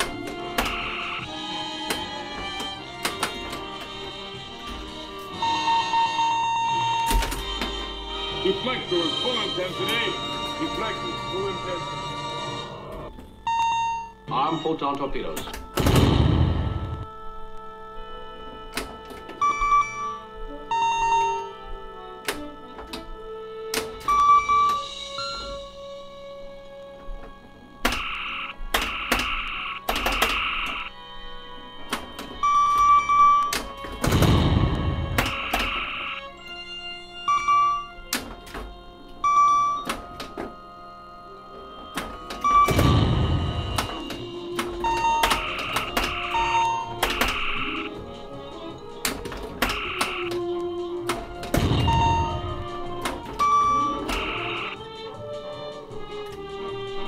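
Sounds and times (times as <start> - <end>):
background music: 0.0 - 57.0
electronic scoring beeps: 0.4 - 1.4, 5.4 - 7.2, 13.4 - 15.3, 19.4 - 21.6, 24.1 - 25.6, 28.0 - 30.9, 32.4 - 33.5, 34.4 - 36.4, 37.2 - 38.0, 39.2 - 39.9, 42.4 - 48.0, 49.7 - 50.5, 51.8 - 54.8
explosion sound effects: 15.8 - 17.1, 34.1 - 35.3, 42.7 - 43.9, 51.6 - 52.7
pinball mechanical clicks and thunks: 41.8 - 47.8.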